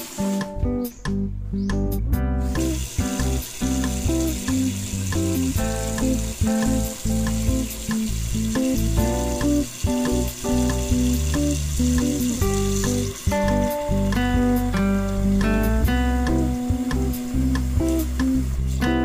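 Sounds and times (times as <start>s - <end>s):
acoustic guitar music: 0.0s - 19.0s
tap water pouring into a pot: 2.5s - 19.0s.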